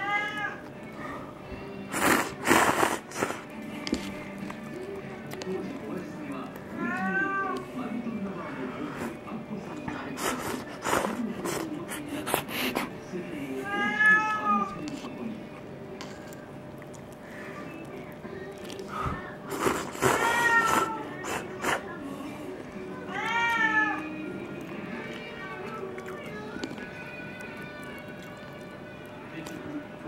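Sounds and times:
cat meowing: 0:00.0 - 0:00.6, 0:06.8 - 0:07.6, 0:13.6 - 0:14.8, 0:20.0 - 0:21.2, 0:23.0 - 0:24.4
murmur of voices: 0:00.1 - 0:30.0.

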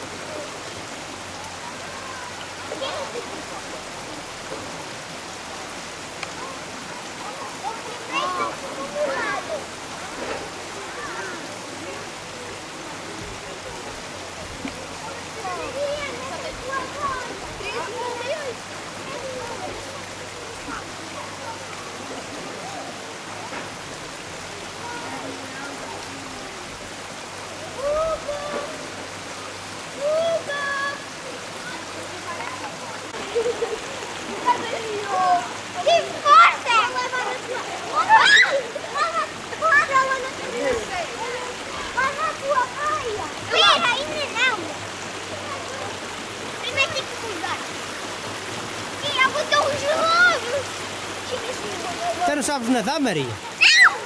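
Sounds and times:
river water rushing over weir: 0:00.0 - 0:54.0
voices of bathers: 0:00.0 - 0:54.0.

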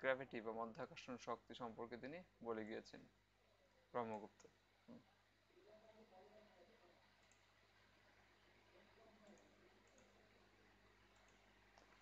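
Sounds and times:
faint computer mouse clicks: 0:11.1 - 0:12.0.

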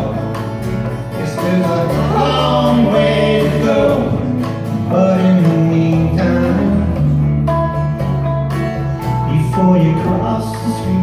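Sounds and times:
steady bass line: 0:00.0 - 0:11.0
strummed guitars: 0:00.0 - 0:11.0
voices singing held notes: 0:01.0 - 0:06.9.

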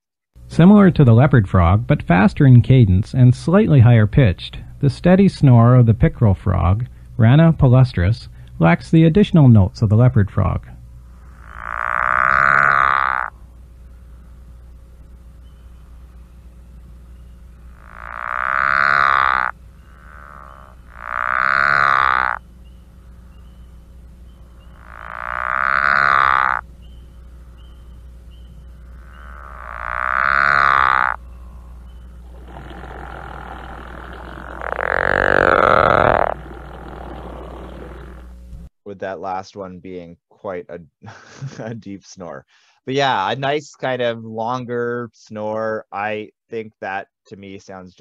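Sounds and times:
frog calling with low snore: 0:09.5 - 0:14.8, 0:15.4 - 0:38.4.

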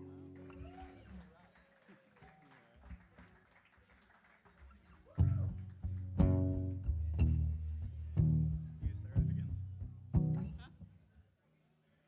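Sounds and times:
loud guitar with sustained low notes: 0:00.0 - 0:00.7, 0:05.2 - 0:10.8.

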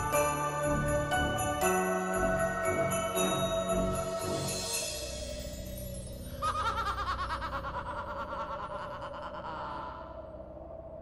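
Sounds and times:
soft soundtrack music: 0:00.0 - 0:11.0.

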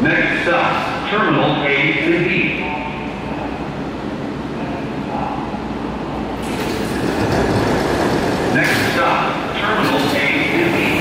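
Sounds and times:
train rumbling to a stop: 0:00.0 - 0:11.0
doors sliding open with hiss: 0:06.4 - 0:07.9.

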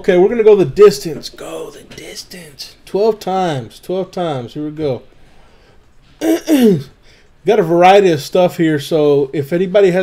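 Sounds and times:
man clearing his throat: 0:06.2 - 0:06.9.

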